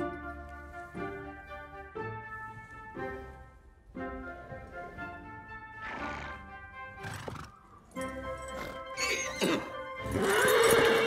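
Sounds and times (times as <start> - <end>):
film music: 0.0 - 11.0
horse neighing loudly: 9.0 - 11.0.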